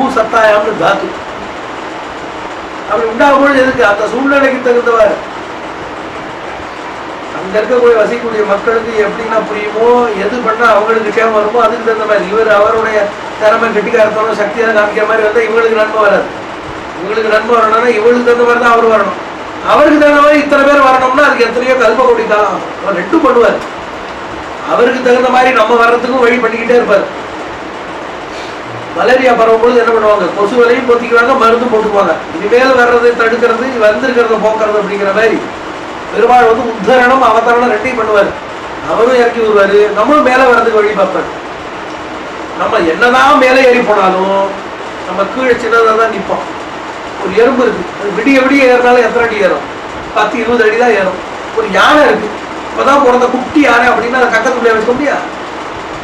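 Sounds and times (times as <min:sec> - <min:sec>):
man speaking: 0:00.0 - 0:01.3, 0:02.9 - 0:05.3, 0:07.3 - 0:16.3, 0:17.0 - 0:23.7, 0:24.6 - 0:27.2, 0:28.5 - 0:35.5, 0:36.1 - 0:41.3, 0:42.6 - 0:46.5, 0:47.2 - 0:55.4
steady background hiss: 0:00.0 - 0:56.0
steady background noise: 0:00.0 - 0:56.0.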